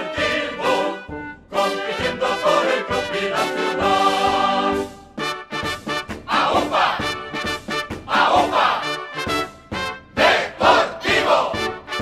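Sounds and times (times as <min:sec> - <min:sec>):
band music: 0:00.0 - 0:12.0
crowd shouting rhythmic chant: 0:06.3 - 0:07.2, 0:08.1 - 0:09.0, 0:10.2 - 0:11.7.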